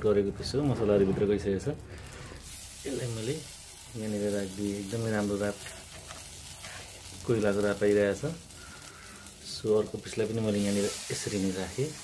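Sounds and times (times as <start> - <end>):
chicken sizzling on grill: 0.0 - 12.0.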